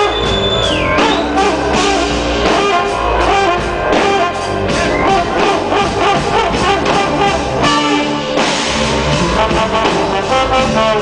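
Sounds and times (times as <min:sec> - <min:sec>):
live band playing loudly: 0:00.0 - 0:11.0.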